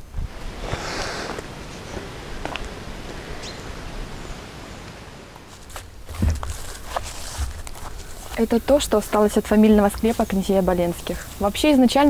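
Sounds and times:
steady background hiss: 0.0 - 12.0
footsteps rustling through leaves: 5.4 - 11.6
twigs snapping: 5.5 - 8.5
dull thuds of steps: 5.6 - 8.1.

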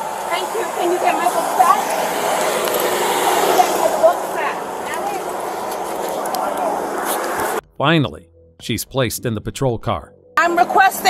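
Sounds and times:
faint voices: 0.0 - 7.5.

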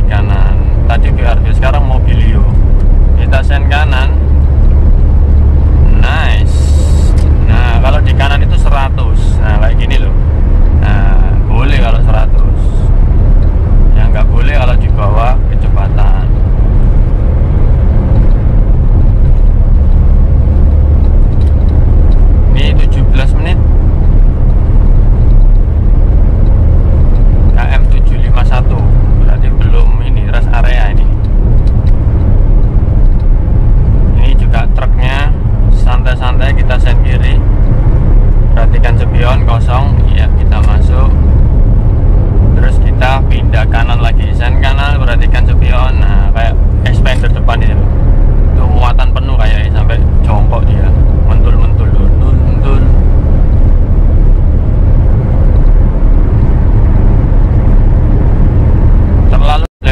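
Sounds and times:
car engine drone: 0.0 - 59.9
wind noise: 0.0 - 59.9.

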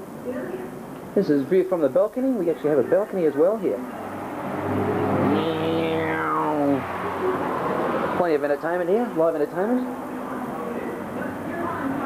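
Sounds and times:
vehicle engine driving past: 3.7 - 9.2.

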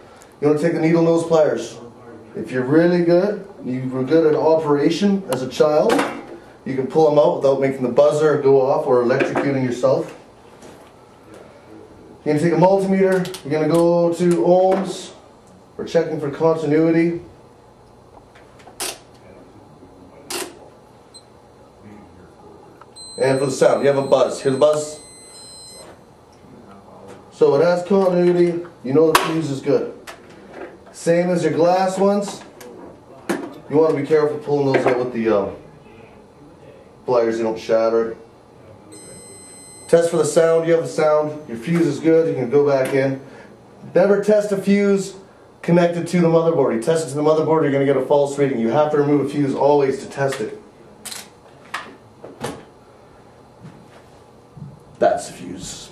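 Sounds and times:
multimeter continuity buzz: 12.2 - 26.4, 37.0 - 43.4.

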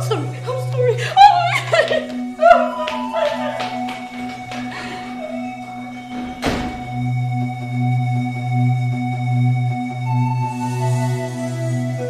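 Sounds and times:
low background music note: 0.0 - 12.0.

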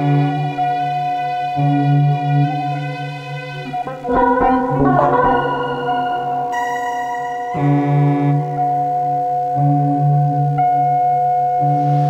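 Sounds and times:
sustained synthetic tones: 3.5 - 10.6.

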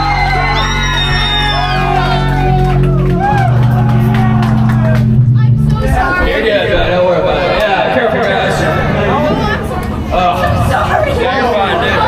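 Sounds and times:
voices shouting and whooping: 0.0 - 6.8
live rock band playing: 0.0 - 11.2.

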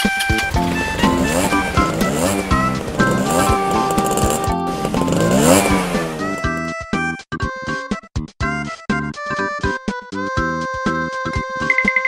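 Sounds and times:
upbeat background music: 0.0 - 8.0, 8.6 - 12.0
car engine revving: 0.3 - 6.6
choppy staccato tune: 0.5 - 6.0, 11.4 - 12.0.

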